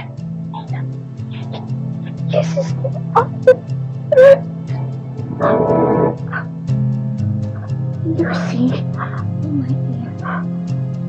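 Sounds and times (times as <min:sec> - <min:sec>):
eerie sustained low notes: 0:00.0 - 0:11.0.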